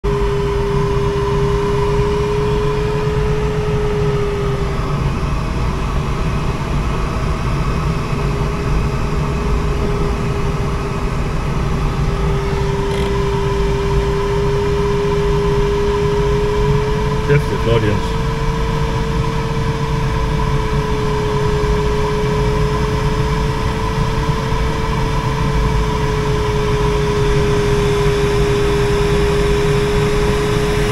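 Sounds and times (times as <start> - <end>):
steady tone: 17.2 - 18.3.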